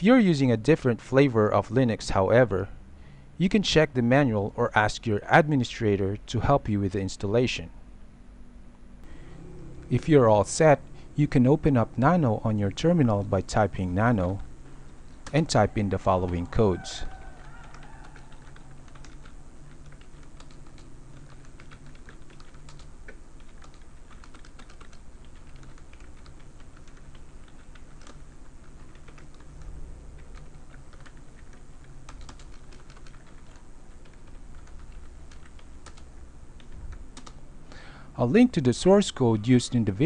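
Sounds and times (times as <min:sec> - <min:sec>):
steady low hum: 0:00.0 - 0:40.0
keyboard typing: 0:11.3 - 0:37.4.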